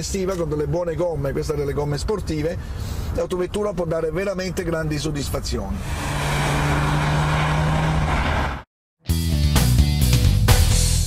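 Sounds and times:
road and tyre noise: 0.0 - 8.7
rock music with electric guitar: 9.1 - 11.0.

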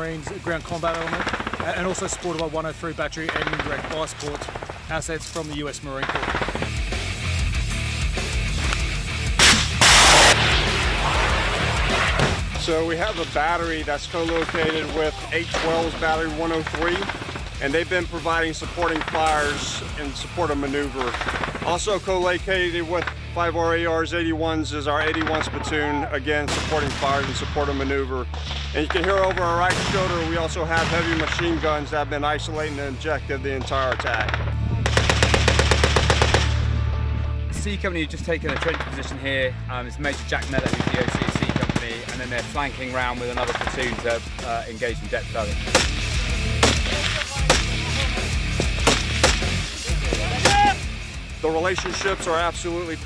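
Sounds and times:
background music: 0.0 - 53.0
machine gun burst: 0.7 - 2.4, 6.0 - 6.8, 9.4 - 11.6, 20.8 - 21.8, 34.9 - 36.5, 40.5 - 41.9
launcher firing blasts: 9.3 - 12.6, 29.4 - 31.8, 33.7 - 36.6.

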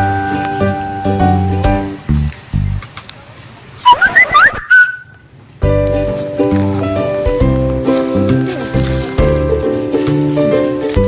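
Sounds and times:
dog whining: 3.8 - 5.2.

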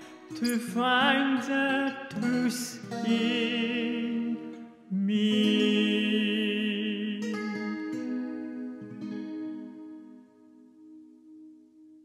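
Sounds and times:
guitar chords ringing: 0.0 - 12.0.

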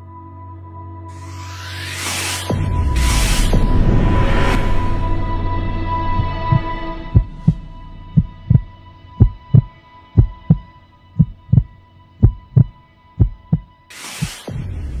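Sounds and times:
hissing whoosh: 1.2 - 4.8, 13.9 - 14.7
heartbeat thumps: 6.2 - 15.0.

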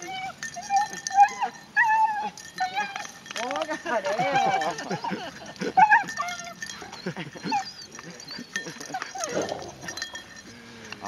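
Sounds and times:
dog whining: 0.0 - 3.2, 4.2 - 10.3.

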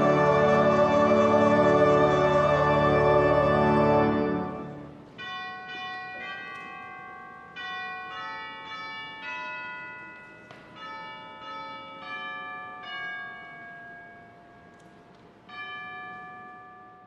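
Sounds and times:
bell chimes playing a slow tune: 2.8 - 17.0.

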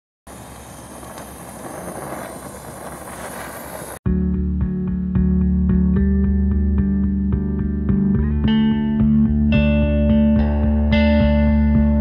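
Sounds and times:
steady rumbling with pops: 0.3 - 4.0.

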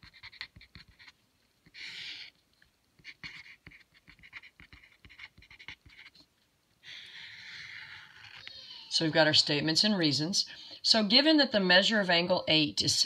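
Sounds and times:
pen writing on paper: 0.0 - 1.2, 3.0 - 6.2.

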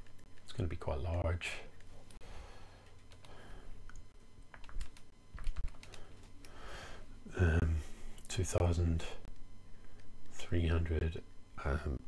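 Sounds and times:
computer keyboard typing: 2.8 - 6.6.

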